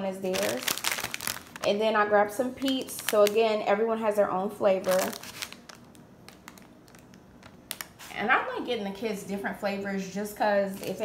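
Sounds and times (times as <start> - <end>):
plastic wrapper crinkling: 0.2 - 3.6, 4.7 - 8.2, 10.7 - 11.0.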